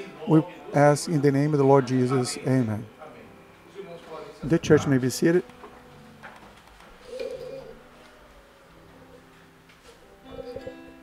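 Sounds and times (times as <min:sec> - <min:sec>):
quiet cooing vocal sound: 0:07.0 - 0:09.3, 0:10.2 - 0:10.9
faint held instrument notes: 0:07.1 - 0:11.0.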